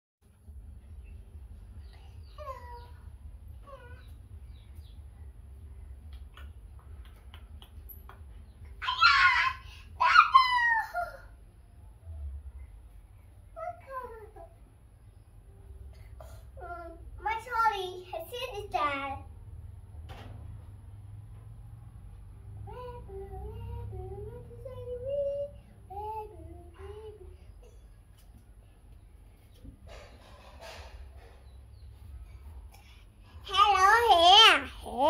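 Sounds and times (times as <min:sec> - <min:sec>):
young child singing: 0:08.8 - 0:11.3, 0:16.3 - 0:19.3, 0:22.5 - 0:27.8, 0:33.4 - 0:35.0
young child squealing: 0:08.8 - 0:11.3.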